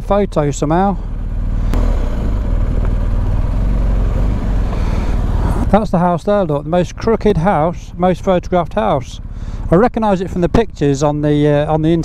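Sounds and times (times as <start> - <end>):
motorcycle engine rumbling: 0.0 - 12.0.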